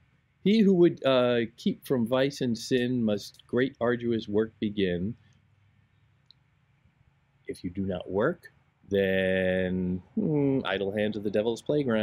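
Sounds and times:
faint background hiss: 0:00.0 - 0:12.0
man's voice: 0:00.5 - 0:05.2, 0:07.5 - 0:12.0.

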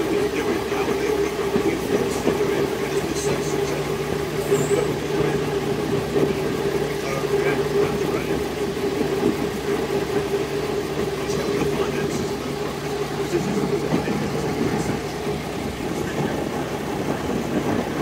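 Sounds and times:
diesel engine drone: 0:00.0 - 0:18.0
train wheels on track: 0:00.0 - 0:18.0.

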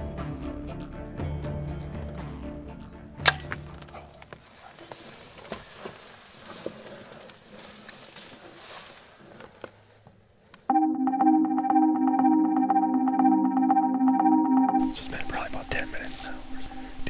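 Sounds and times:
low droning music: 0:00.0 - 0:04.2, 0:10.7 - 0:17.0
bowstring crack: 0:03.2 - 0:04.3
soft rustling: 0:04.2 - 0:10.2.

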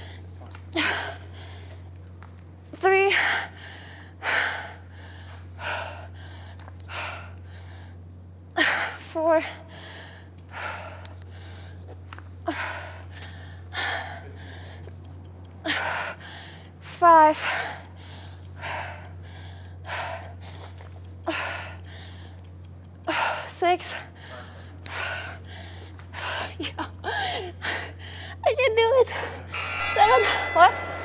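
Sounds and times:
woman breathing hard: 0:03.1 - 0:08.0, 0:08.6 - 0:14.9, 0:15.6 - 0:20.7, 0:23.0 - 0:28.4.

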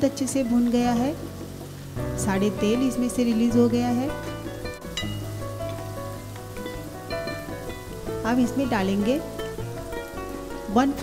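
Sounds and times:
background music with held notes: 0:00.0 - 0:11.0
paste sizzling in oil: 0:00.6 - 0:11.0.

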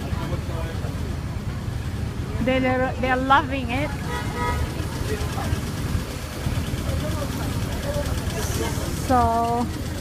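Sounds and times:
low street rumble: 0:00.0 - 0:10.0.

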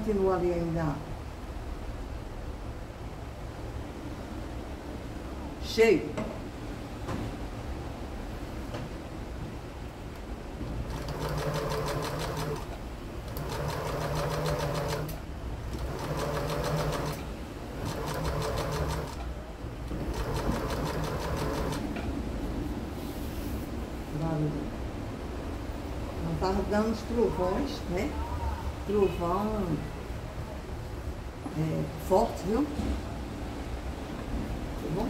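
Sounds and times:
sewing machine stitching: 0:10.8 - 0:19.3, 0:19.9 - 0:21.9.

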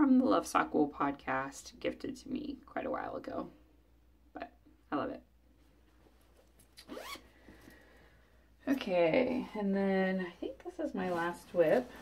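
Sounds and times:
zipper being pulled: 0:06.7 - 0:07.4.

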